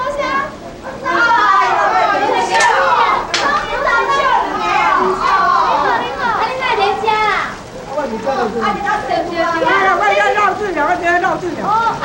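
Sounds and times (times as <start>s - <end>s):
women talking excitedly: 0.0s - 12.0s.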